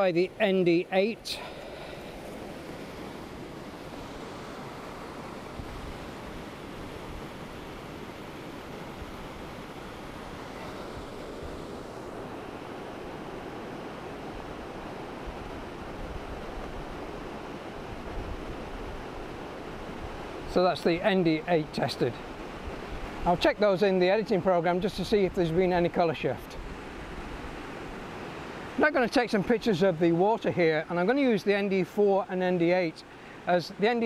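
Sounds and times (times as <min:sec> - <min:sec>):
wind buffeting microphone: 0:02.4 - 0:20.5.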